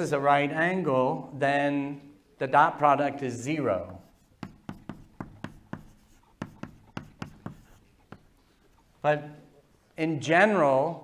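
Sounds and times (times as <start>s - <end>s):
chalk tapping on blackboard: 3.8s - 8.7s.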